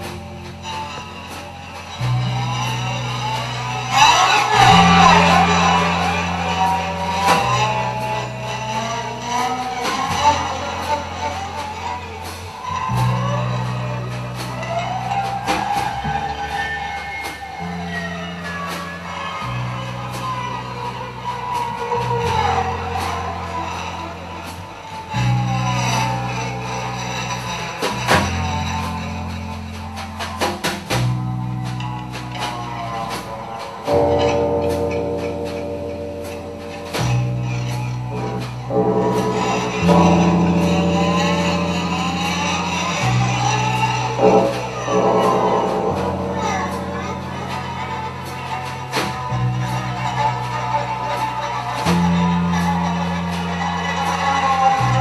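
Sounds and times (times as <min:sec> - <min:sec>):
live post-rock band playing: 0:00.0 - 0:55.0
sustained low bass notes: 0:00.0 - 0:55.0
sharp percussive hits: 0:27.8 - 0:55.0.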